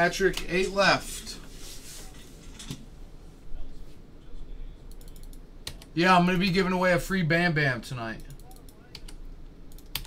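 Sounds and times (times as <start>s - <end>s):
computer keyboard typing: 8.2s - 10.0s.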